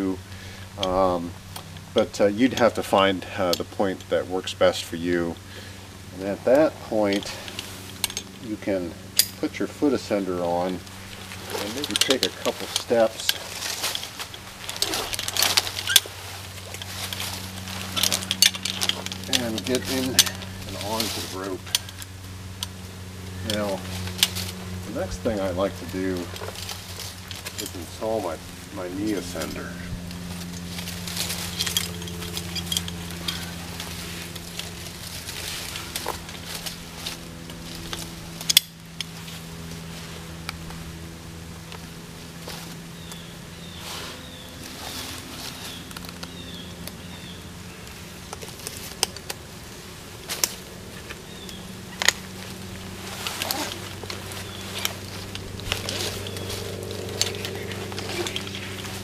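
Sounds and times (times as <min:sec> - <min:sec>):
steady low hum: 0:00.0 - 0:59.0
clothing and rope rustling: 0:05.3 - 0:59.0
climbing hardware clicking: 0:06.5 - 0:40.8, 0:44.6 - 0:59.0.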